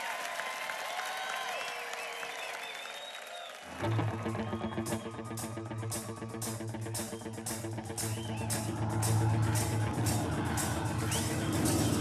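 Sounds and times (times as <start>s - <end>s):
drums and cymbals: 4.9s - 12.0s.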